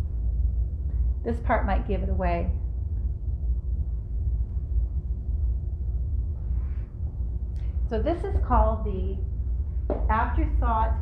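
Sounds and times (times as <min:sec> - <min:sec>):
faint constant hum: 0:00.0 - 0:11.0
low background rumble: 0:00.0 - 0:11.0.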